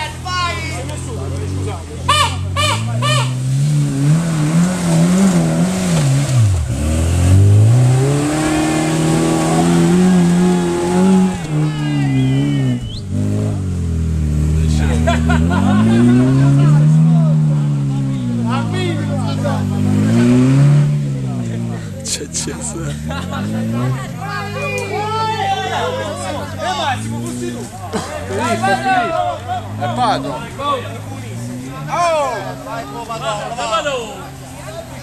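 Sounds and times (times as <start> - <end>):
engine revving hard: 1.1 - 35.0.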